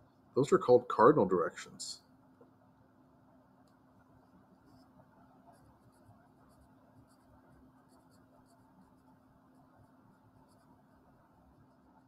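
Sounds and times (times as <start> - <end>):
marker scratching on paper: 4.2 - 12.0.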